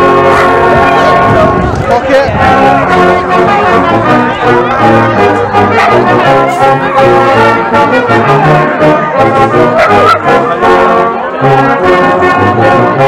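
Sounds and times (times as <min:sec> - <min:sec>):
brass band playing: 0:00.0 - 0:13.0.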